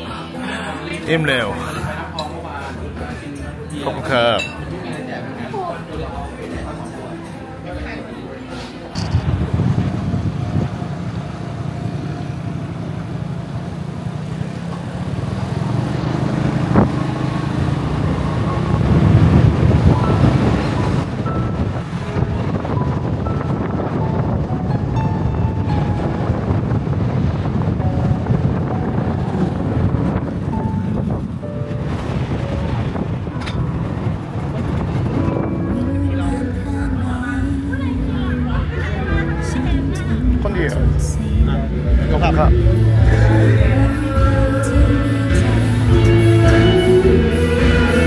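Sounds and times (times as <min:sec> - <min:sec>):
light background music: 0:00.0 - 0:09.8, 0:20.0 - 0:48.0
road traffic noise: 0:00.0 - 0:48.0
wind rumbling on microphone: 0:09.0 - 0:13.4, 0:16.3 - 0:38.1.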